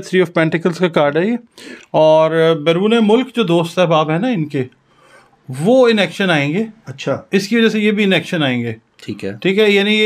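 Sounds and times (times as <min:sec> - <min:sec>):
man speaking: 0:00.0 - 0:04.8, 0:05.5 - 0:10.0.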